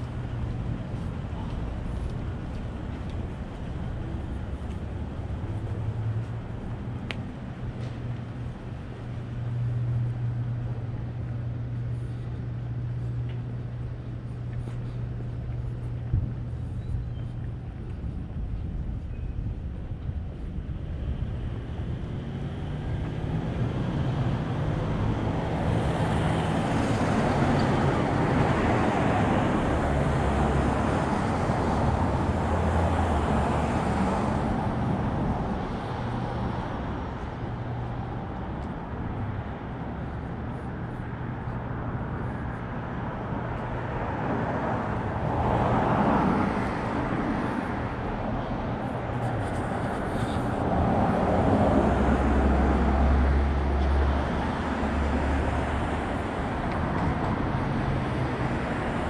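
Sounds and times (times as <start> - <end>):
cars passing: 0.0 - 59.0.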